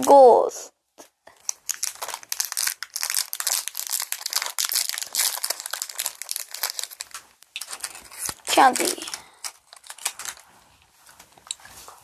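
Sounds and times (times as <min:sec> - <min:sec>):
plastic candy wrappers crinkling: 0:01.0 - 0:11.6.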